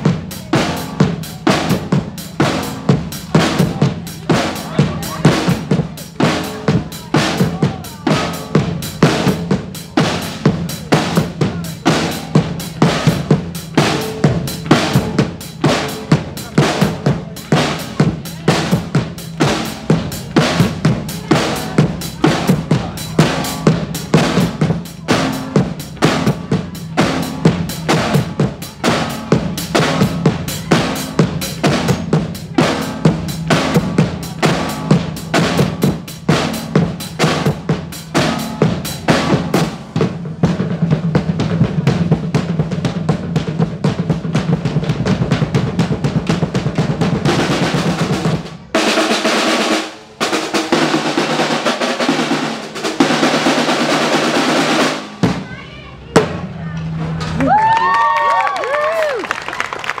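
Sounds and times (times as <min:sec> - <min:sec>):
drumline playing cadence: 0:00.0 - 1:00.0
applause: 0:57.4 - 1:00.0
high whoops: 0:57.4 - 1:00.0.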